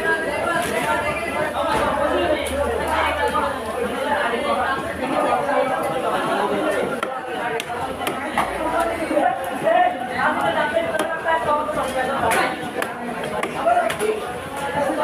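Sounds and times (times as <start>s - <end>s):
chatter of many voices: 0.0s - 15.0s.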